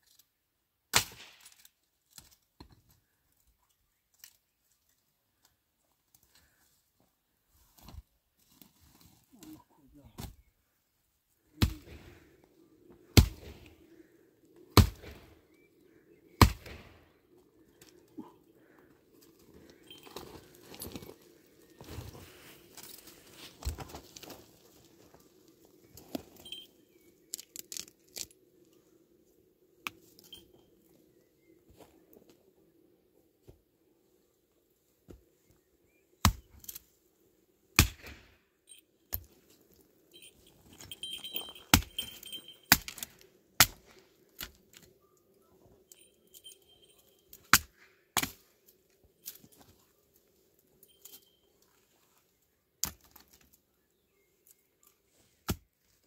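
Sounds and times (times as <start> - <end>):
hand tool chopping wood: 42.7 - 43.8, 47.5 - 48.4.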